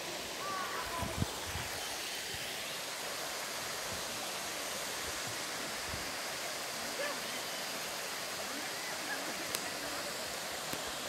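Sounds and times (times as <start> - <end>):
waterfall rushing: 0.0 - 11.0.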